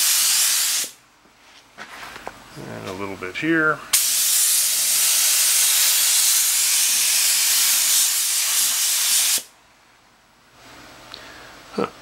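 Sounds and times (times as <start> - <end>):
paint spray gun hissing: 0.0 - 1.0, 3.9 - 9.5.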